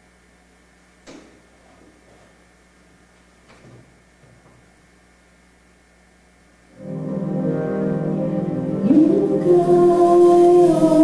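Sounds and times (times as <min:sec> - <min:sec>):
keyboard chord: 0:06.8 - 0:11.0.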